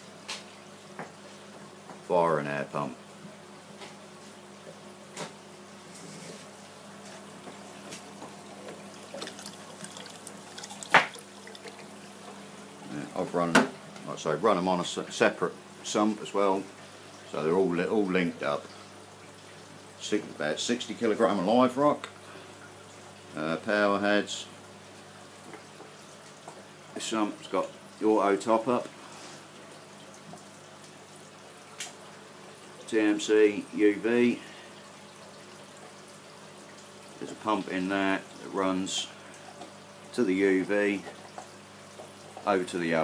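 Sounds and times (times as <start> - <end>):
pump hum: 0.0 - 43.0
water trickling from pipe: 6.6 - 15.1, 15.7 - 43.0.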